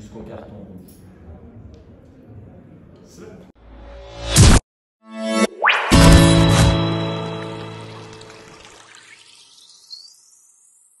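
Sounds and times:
jingle music: 0:05.3 - 0:08.6.

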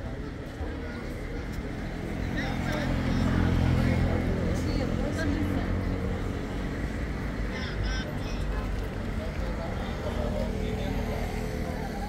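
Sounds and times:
people chatting: 0:00.0 - 0:06.2, 0:07.5 - 0:12.0.

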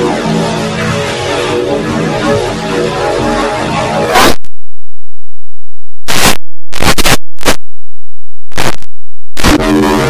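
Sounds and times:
harsh distorted noise bursts: 0:00.0 - 0:04.6, 0:05.4 - 0:10.0.

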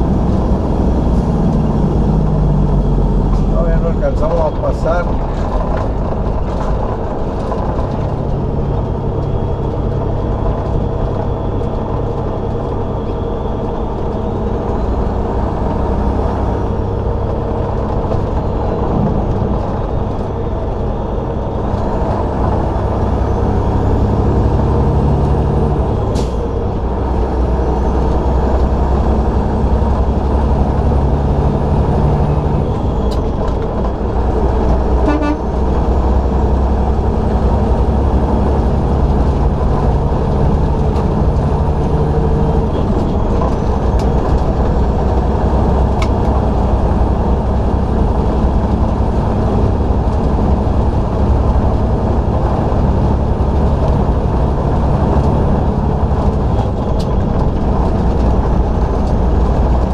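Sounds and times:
truck diesel engine rumble: 0:00.0 - 0:59.9.

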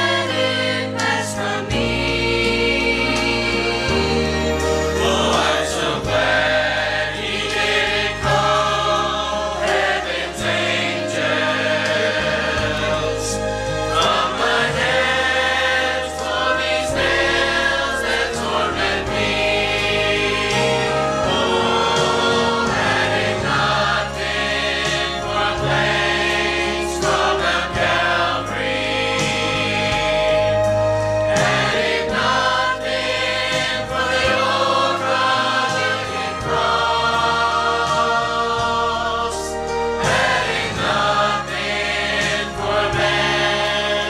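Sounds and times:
choir singing a hymn: 0:00.0 - 0:44.0
instrumental accompaniment with bass: 0:00.0 - 0:44.0.

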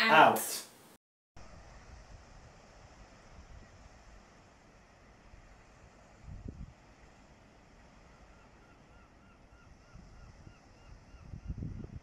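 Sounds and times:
wind rumbling on microphone: 0:01.4 - 0:12.0.

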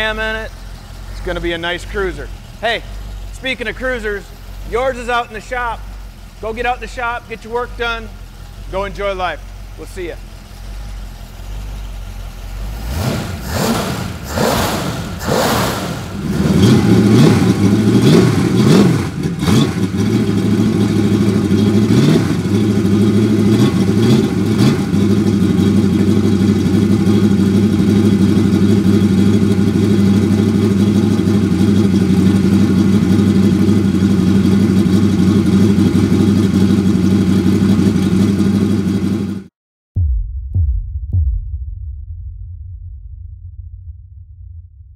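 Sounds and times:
car engine revving and running: 0:00.0 - 0:39.5.

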